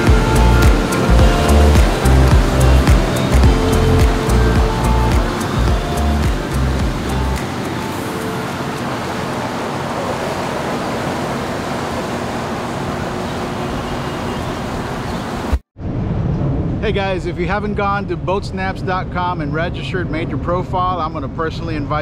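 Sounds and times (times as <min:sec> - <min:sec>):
music with heavy bass beat: 0:00.0 - 0:08.2
boat engine: 0:00.0 - 0:15.6
water rushing: 0:00.0 - 0:15.6.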